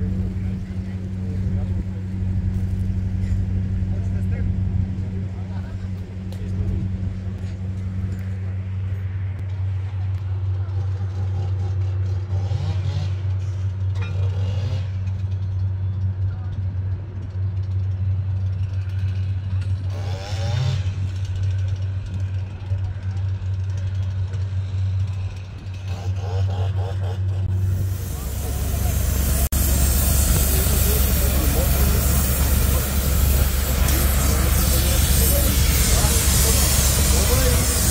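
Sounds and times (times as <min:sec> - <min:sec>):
diesel engine droning: 0:00.0 - 0:37.9.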